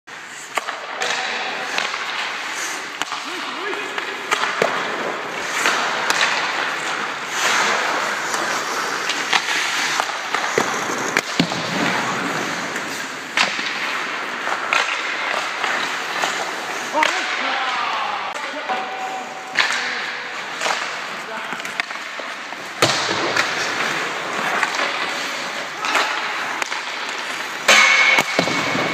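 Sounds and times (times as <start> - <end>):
skate blades scraping ice: 0.1 - 28.9
pucks striking boards: 0.2 - 28.9
sticks hitting pucks: 0.2 - 28.9.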